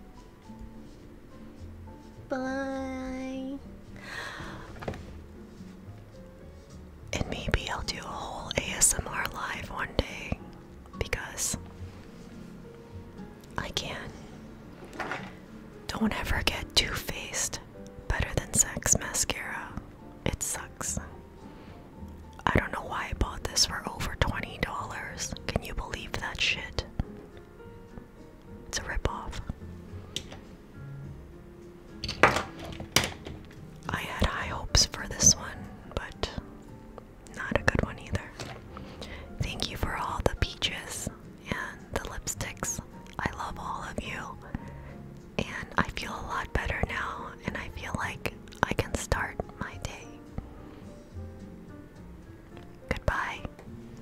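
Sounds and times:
woman whispering: 7.1s - 10.4s, 11.0s - 11.6s, 13.6s - 14.3s, 15.9s - 21.1s, 22.4s - 26.9s, 28.7s - 29.6s, 33.9s - 36.4s, 37.3s - 38.4s, 39.4s - 44.5s, 45.4s - 50.2s, 52.9s - 53.5s.

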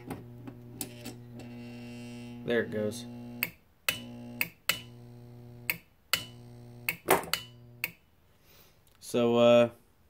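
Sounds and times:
transformer humming: 0.0s - 7.9s.

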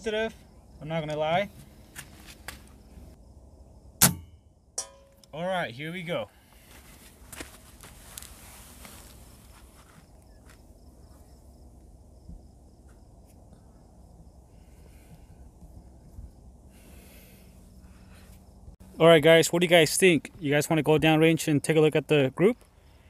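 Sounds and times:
faint outdoor background noise: 0.0s - 23.0s.

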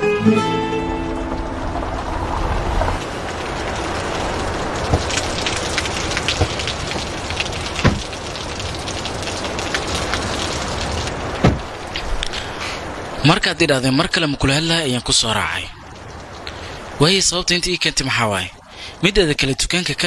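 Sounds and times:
steady noisy hiss: 0.0s - 20.0s
louder knocks: 7.8s - 8.1s, 11.4s - 11.7s.

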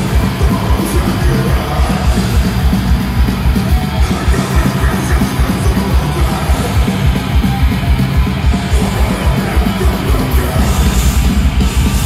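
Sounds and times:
distorted guitars: 0.0s - 12.0s
pounding bass drum: 0.0s - 12.0s.

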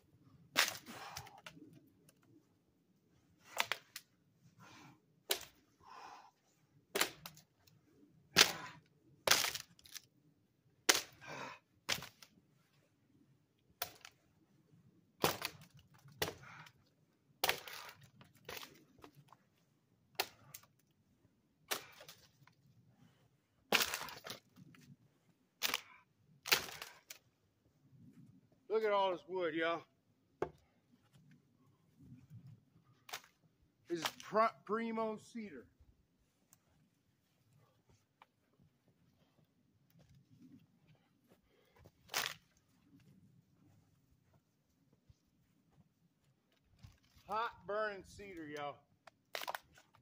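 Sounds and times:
dry branches snapping: 0.5s - 1.6s, 3.5s - 4.1s, 6.9s - 7.4s, 8.4s - 10.1s, 10.9s - 11.2s, 11.9s - 12.3s, 13.8s - 14.2s, 15.2s - 16.6s, 17.4s - 19.1s, 20.1s - 20.8s, 21.7s - 22.5s, 23.7s - 24.9s, 25.6s - 27.2s, 33.0s - 33.4s, 42.1s - 42.6s, 49.2s - 50.0s
dry branch snapping: 7.0s - 7.4s, 9.2s - 10.1s, 25.6s - 27.2s, 33.1s - 33.4s, 42.1s - 42.5s, 49.2s - 49.9s.

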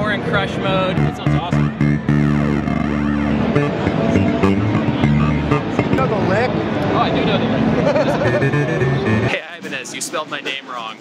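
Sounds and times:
gritty distorted bass notes: 0.6s - 9.6s
sweeping warbling tones: 0.8s - 9.5s.

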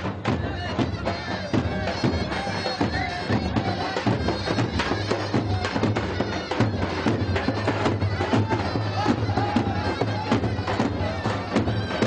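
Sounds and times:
reed pipe melody: 0.0s - 12.0s.

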